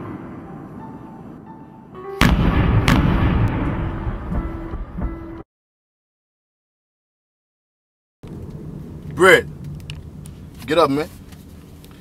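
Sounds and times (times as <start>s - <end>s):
fireworks exploding: 2.2s - 5.1s.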